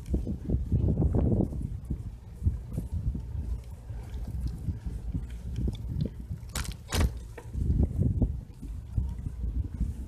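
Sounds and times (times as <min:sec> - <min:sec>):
bicycle rolling over asphalt: 0:00.0 - 0:10.0
wind buffeting microphone: 0:00.0 - 0:10.0.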